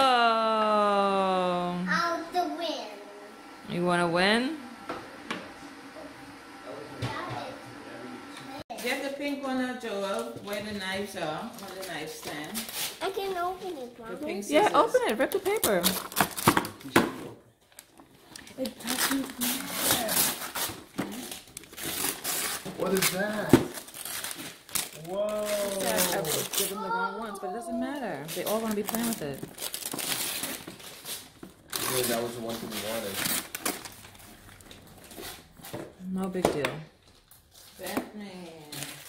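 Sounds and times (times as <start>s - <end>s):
wrapping paper tearing: 11.5s - 13.3s, 15.2s - 16.9s, 17.7s - 35.7s, 38.6s - 39.0s
paper rustling and crinkling: 17.6s - 26.9s, 28.2s - 35.8s.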